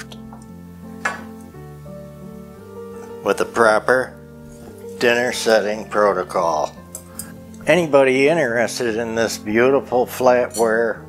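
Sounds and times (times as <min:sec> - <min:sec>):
background music with sustained chords: 0:00.0 - 0:11.0.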